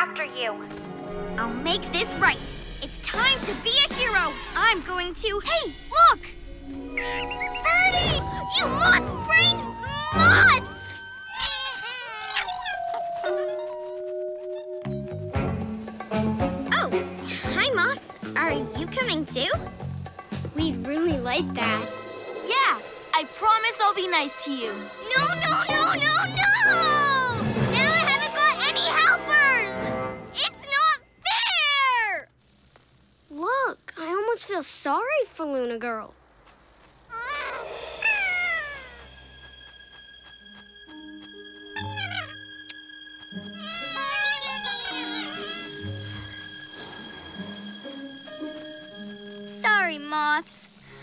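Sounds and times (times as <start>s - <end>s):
high-pitched cry sliding down: 7.5s - 14.0s, 37.1s - 39.2s, 43.6s - 46.4s
squeaky cartoon creature calls: 7.5s - 15.1s, 37.1s - 39.1s, 41.8s - 42.4s, 43.5s - 45.9s
background music with held notes: 12.6s - 30.4s, 39.0s - 49.9s.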